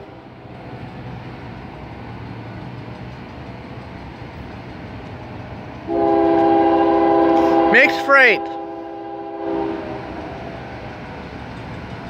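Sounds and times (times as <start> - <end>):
diesel locomotives rumbling: 0.0 - 12.0
locomotive air horn chord: 5.9 - 10.2.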